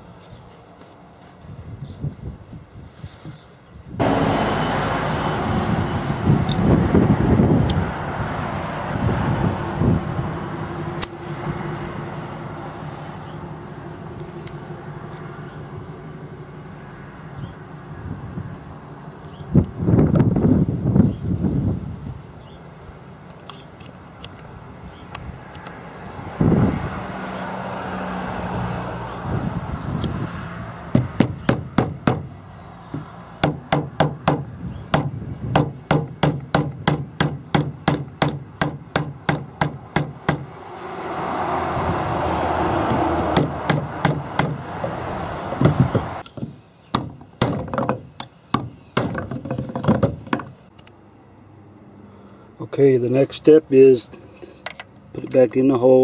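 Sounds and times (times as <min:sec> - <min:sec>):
hammer tapping on metal: 0:43.3 - 0:44.6.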